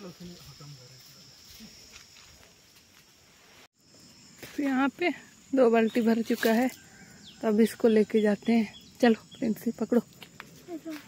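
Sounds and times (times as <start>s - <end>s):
high-pitched insect drone: 0.0s - 3.2s.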